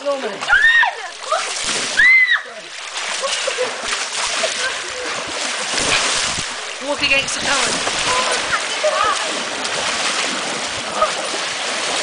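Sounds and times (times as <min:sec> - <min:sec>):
pool water splashing: 0:00.0 - 0:12.0
high shout: 0:00.5 - 0:02.6
voices: 0:06.9 - 0:09.6.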